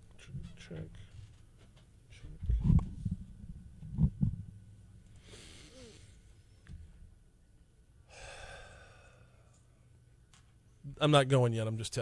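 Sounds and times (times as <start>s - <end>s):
low thumps on microphone: 2.3s - 4.6s
breathy exhale into microphone: 8.1s - 9.5s.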